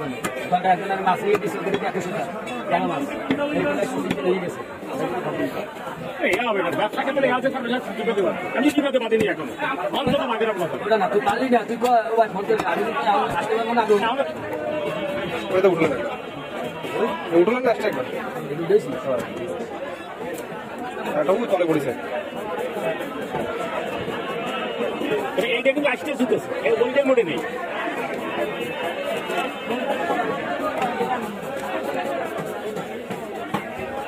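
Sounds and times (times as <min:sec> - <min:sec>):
people chattering: 0:00.0 - 0:34.0.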